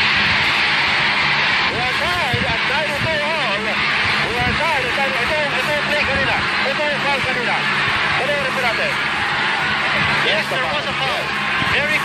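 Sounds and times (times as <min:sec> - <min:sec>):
arena crowd cheering: 0:00.0 - 0:12.0
voices shouting: 0:00.0 - 0:12.0.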